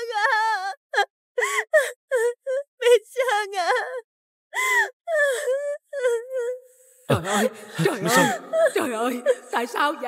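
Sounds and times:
woman wailing: 0:07.4 - 0:09.0.

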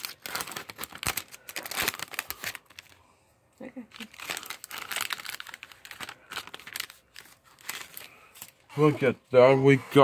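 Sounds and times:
plastic packaging crinkling: 0:00.0 - 0:03.0, 0:03.9 - 0:08.7.

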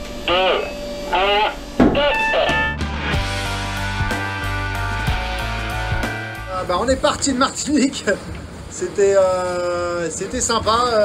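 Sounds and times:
music with a steady beat: 0:02.5 - 0:06.5.

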